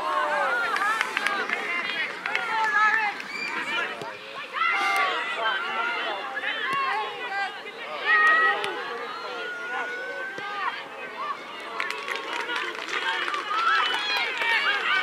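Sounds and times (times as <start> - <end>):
players shouting and calling: 0.0 - 15.0.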